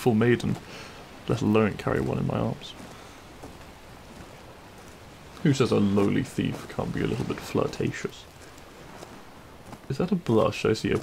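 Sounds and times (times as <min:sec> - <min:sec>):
faint rain hiss: 0:00.0 - 0:11.0.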